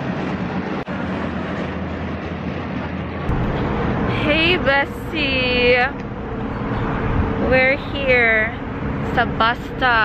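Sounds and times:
car road and wind noise: 0.0 - 10.0.

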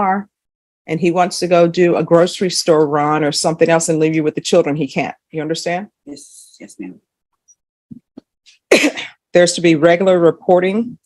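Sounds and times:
person coughing: 8.5 - 9.2.

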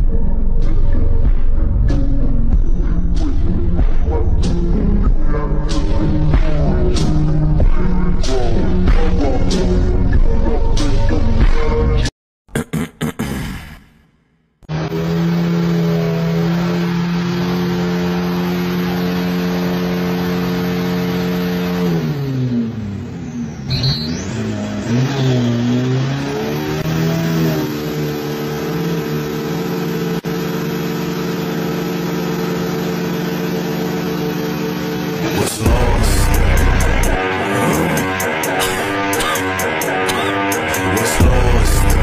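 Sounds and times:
drag car engine revving: 14.6 - 42.0.

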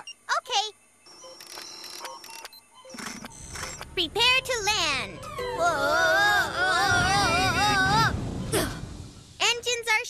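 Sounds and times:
short electronic beeps: 1.1 - 4.0.

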